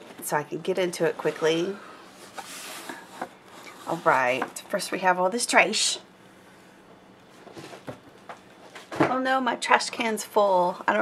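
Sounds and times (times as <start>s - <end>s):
cardboard rustling: 2.2s - 4.6s.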